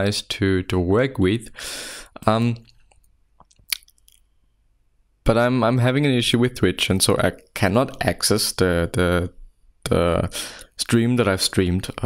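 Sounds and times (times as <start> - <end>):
mouth clicks: 2.6 - 4.2.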